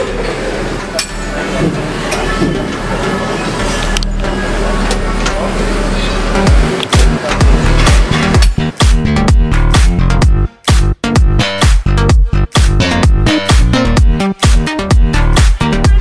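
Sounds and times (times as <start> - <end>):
electronic dance music: 5.6 - 16.0
heavy kick-drum beat: 6.4 - 16.0.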